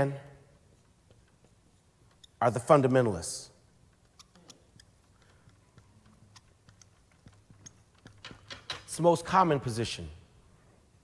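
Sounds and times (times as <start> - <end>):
marker writing on board: 3.9 - 8.3.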